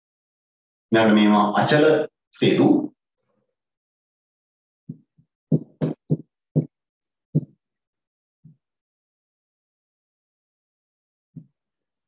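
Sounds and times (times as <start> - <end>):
marker pen writing on whiteboard: 4.9 - 6.8, 7.4 - 7.6.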